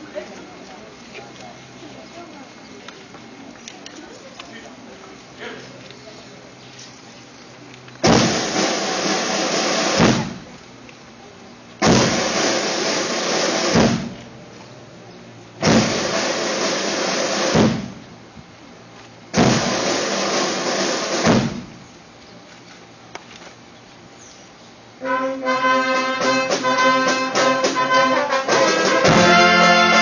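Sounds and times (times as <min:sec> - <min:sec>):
military band drum rolls: 0:08.0 - 0:10.6, 0:11.8 - 0:14.3, 0:15.6 - 0:18.1, 0:19.3 - 0:21.8, 0:25.0 - 0:30.0.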